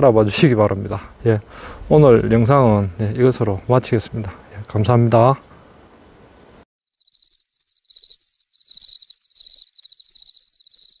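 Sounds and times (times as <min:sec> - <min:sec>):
pulsing insect trill: 0:06.8 - 0:11.0.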